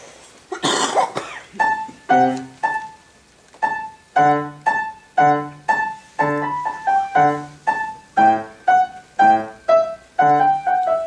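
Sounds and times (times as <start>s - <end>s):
person coughing: 0.5s - 1.6s
grand piano playing: 1.6s - 11.0s.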